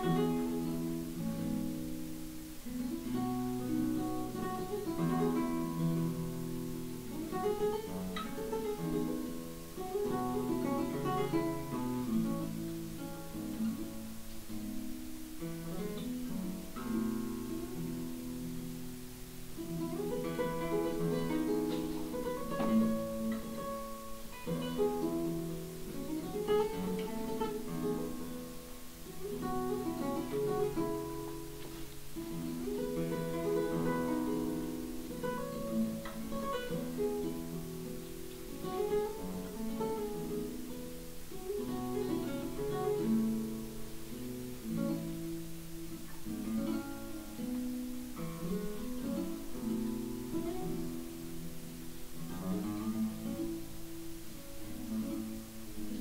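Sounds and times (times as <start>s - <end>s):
fingerstyle classical guitar: 0.0s - 56.0s.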